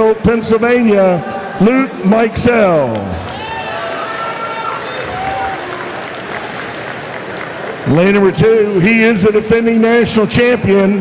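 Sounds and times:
crowd cheering and shouting: 0:00.0 - 0:06.8
crowd clapping: 0:02.7 - 0:08.2.

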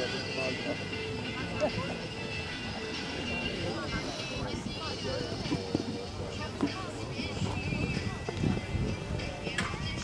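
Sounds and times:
background music: 0:00.0 - 0:10.0
people talking: 0:00.0 - 0:10.0.

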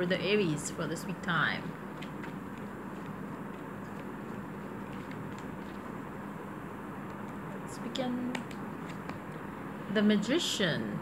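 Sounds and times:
cards being shuffled: 0:01.7 - 0:06.4, 0:07.0 - 0:09.5.

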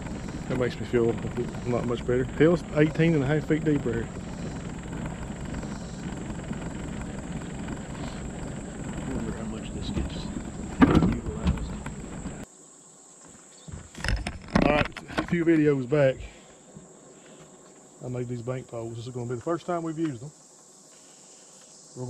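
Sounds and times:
person speaking: 0:00.0 - 0:05.3
outboard motor running: 0:00.0 - 0:12.5, 0:13.7 - 0:17.4
knocks: 0:09.9 - 0:12.3.

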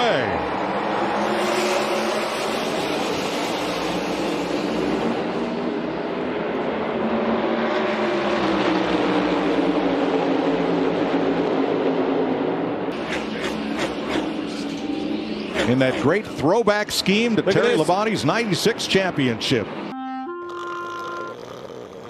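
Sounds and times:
cars passing: 0:00.0 - 0:22.0
race car engines droning: 0:00.0 - 0:22.0.

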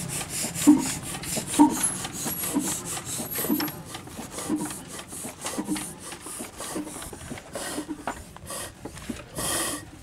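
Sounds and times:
diesel engine clatter: 0:00.0 - 0:10.0.

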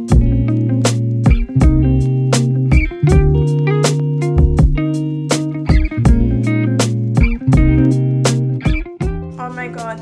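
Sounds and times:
guitar and bass music: 0:00.0 - 0:10.0.

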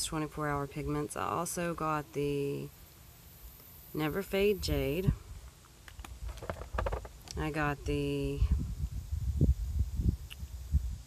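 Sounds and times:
wind buffeting microphone: 0:04.4 - 0:11.0.

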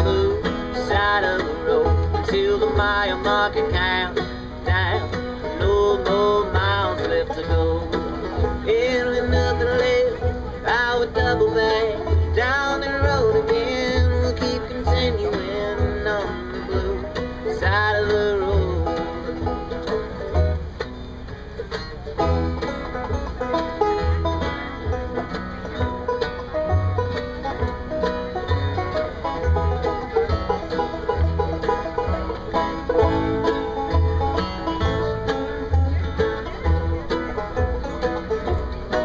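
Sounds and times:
acoustic guitar: 0:00.0 - 0:39.0
banjo: 0:00.0 - 0:39.0
mandolin: 0:00.0 - 0:39.0
upright bass: 0:00.0 - 0:39.0.

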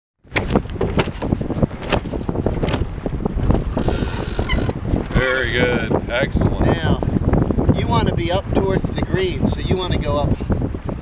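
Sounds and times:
wind buffeting microphone: 0:00.2 - 0:11.0.

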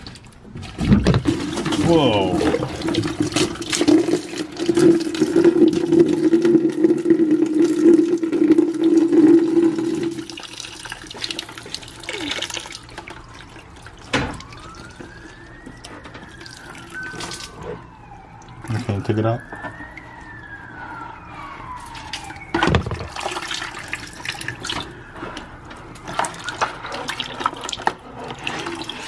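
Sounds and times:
water pouring into plastic housing: 0:00.0 - 0:29.0
faint siren wailing: 0:00.4 - 0:29.0.

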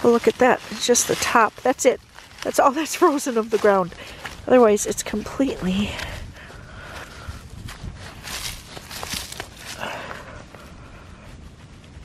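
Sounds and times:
soil and dry leaves crunching: 0:00.0 - 0:12.0
wind rumbling on microphone: 0:00.0 - 0:12.0.

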